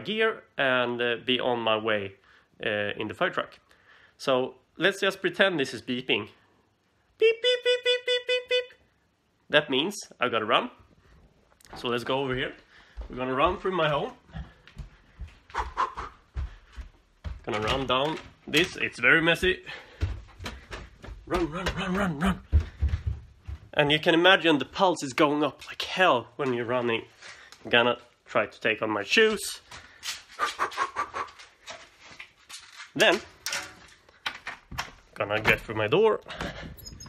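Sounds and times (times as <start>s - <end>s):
shoes scuffing and rustling: 11.7s - 24.0s
running footsteps: 11.7s - 27.6s
person breathing hard: 12.6s - 13.1s, 14.3s - 17.0s, 19.6s - 21.1s, 22.2s - 23.2s.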